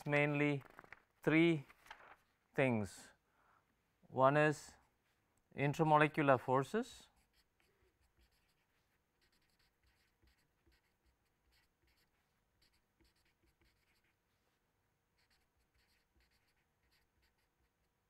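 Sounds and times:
marker pen scratching on paper: 7.1 - 14.5, 15.1 - 18.0.

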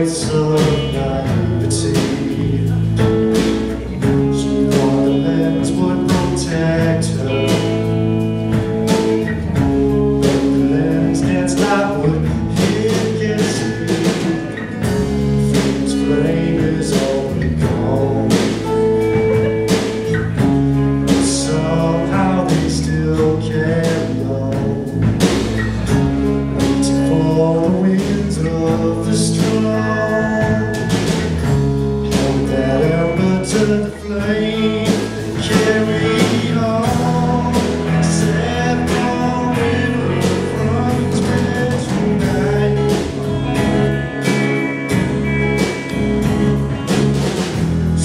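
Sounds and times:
person singing: 0.0 - 46.9
drum kit with cymbals: 0.0 - 48.0
electric guitars: 0.0 - 48.0
strummed acoustic guitar: 0.0 - 48.0.

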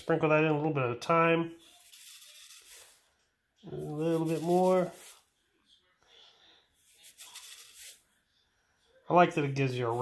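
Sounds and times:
salt sprinkled onto plastic tray: 7.0 - 8.0.

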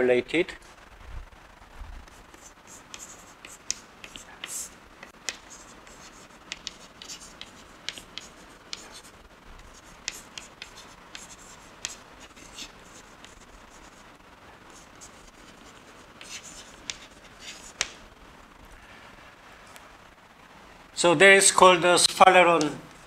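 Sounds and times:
chalk tapping and scratching: 2.1 - 14.1, 14.7 - 18.0.

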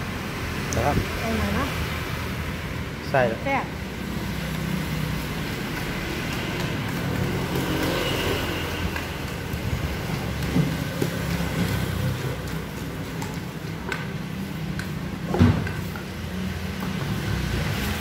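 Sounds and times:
pestle pounding in a mortar: 5.5 - 17.6.

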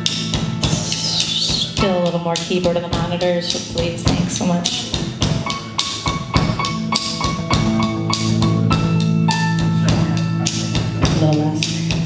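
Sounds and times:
bass notes: 0.0 - 12.0
drum kit steady rhythm: 0.0 - 12.0
keyboard notes: 0.0 - 12.0
electric guitar: 3.5 - 12.0.

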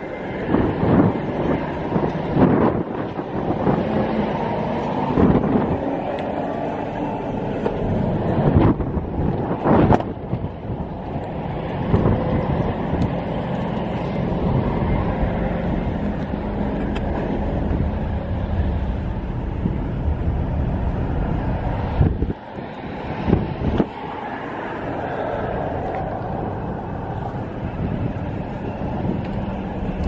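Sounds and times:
steady low hum: 0.0 - 30.0
wind rumbling on microphone: 0.0 - 30.0.

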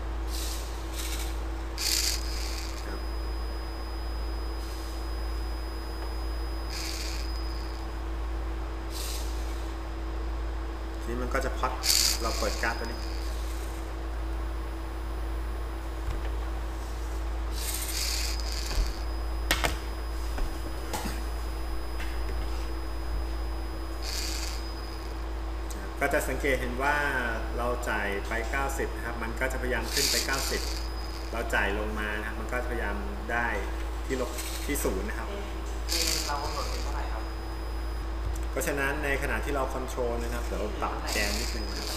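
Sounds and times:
steady low hum: 0.0 - 41.9
thin high whine: 0.0 - 41.9
servo motor whirring in bursts: 0.3 - 3.6, 4.6 - 7.8, 8.9 - 9.7, 11.7 - 13.9, 16.8 - 19.2, 23.9 - 25.2, 29.6 - 31.7, 34.1 - 35.1, 35.8 - 37.2, 40.2 - 41.9.

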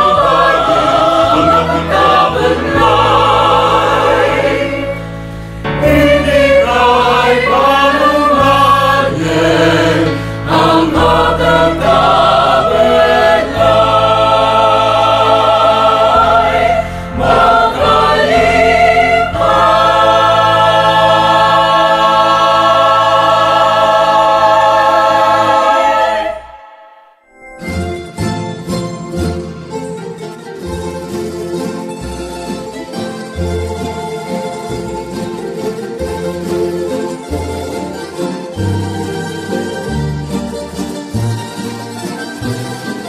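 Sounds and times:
mixed choir singing: 0.0 - 27.2, 38.6 - 40.2.

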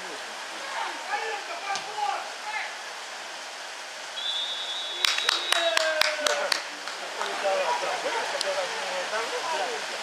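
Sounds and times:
outdoor noise haze: 0.0 - 10.0
players shouting: 0.6 - 2.9, 4.2 - 9.8
referee whistle: 4.2 - 5.8
people clapping: 4.9 - 7.8.

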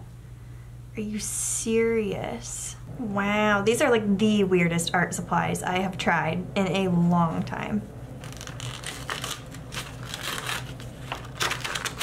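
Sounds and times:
paper rustling: 8.2 - 12.0.

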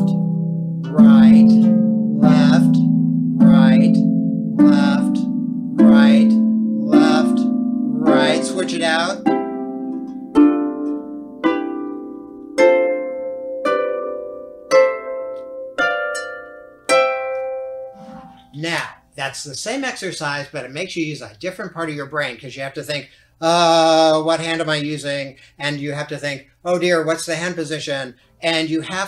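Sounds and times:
harp chords plucked: 0.0 - 19.1.

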